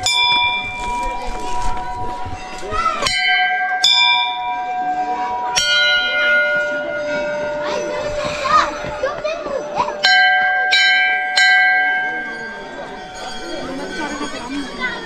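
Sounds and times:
large brass bells ringing: 0:00.0 - 0:15.0.

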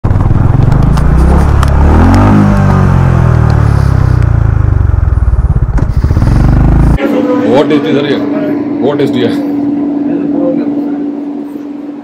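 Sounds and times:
motorcycle engine accelerating: 0:00.0 - 0:12.0.

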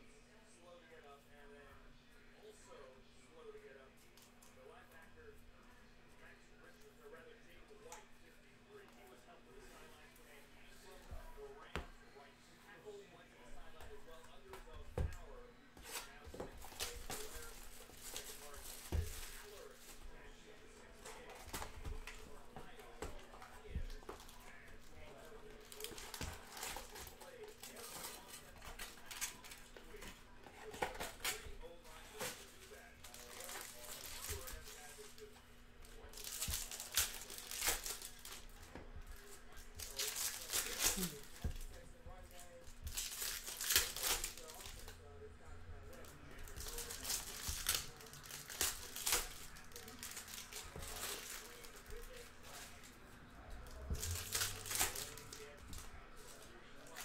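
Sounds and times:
foil wrappers crinkling and tearing: 0:13.6 - 0:45.0, 0:45.9 - 0:53.0, 0:53.7 - 0:57.0.

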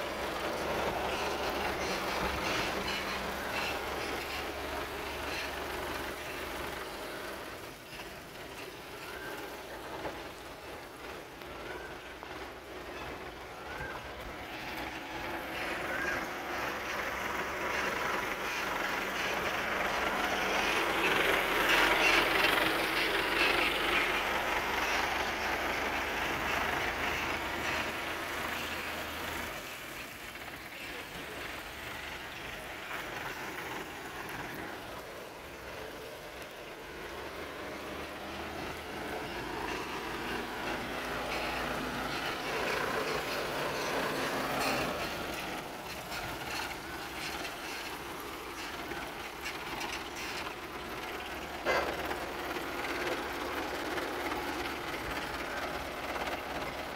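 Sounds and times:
forklift approaching: 0:00.0 - 0:56.9
tyre hiss on wet road: 0:00.0 - 0:56.9
vehicle engine noise: 0:00.0 - 0:56.9.

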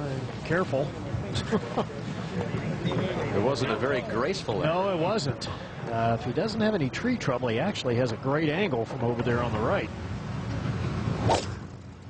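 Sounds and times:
low steady background rumble: 0:00.0 - 0:12.0.

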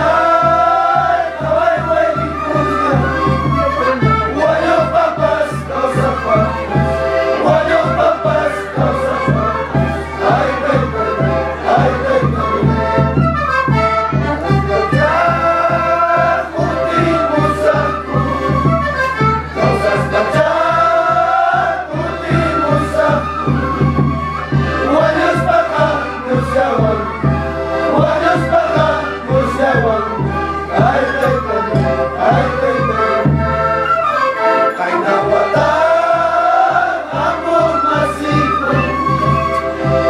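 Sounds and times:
steady beat: 0:00.0 - 0:33.8, 0:34.9 - 0:40.0
group of voices singing: 0:00.0 - 0:40.0.

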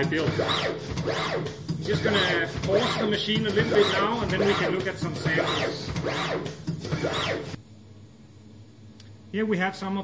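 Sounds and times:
servo drive whining: 0:00.0 - 0:07.6
faint hum: 0:00.0 - 0:10.0.

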